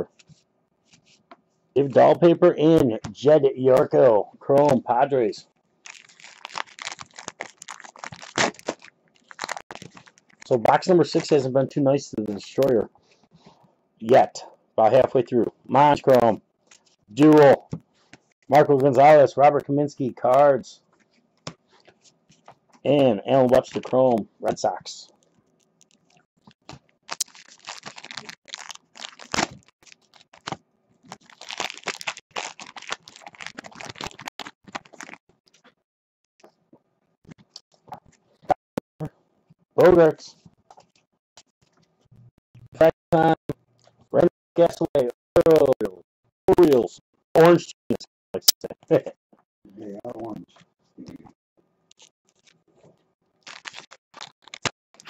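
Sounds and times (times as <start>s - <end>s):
card pack wrapper crinkling: 5.8s - 11.4s, 25.2s - 35.6s, 53.4s - 55.0s
cards being shuffled: 5.9s - 10.5s.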